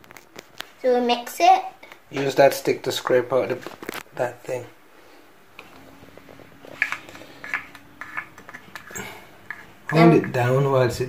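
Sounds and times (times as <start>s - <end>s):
wooden stick scraping plastic cup: 6.7s - 10.4s.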